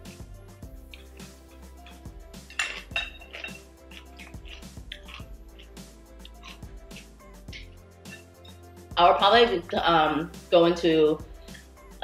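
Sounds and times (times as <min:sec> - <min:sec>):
soft background music: 0:00.0 - 0:12.0
chopsticks clinking on ceramic bowl: 0:01.8 - 0:08.3.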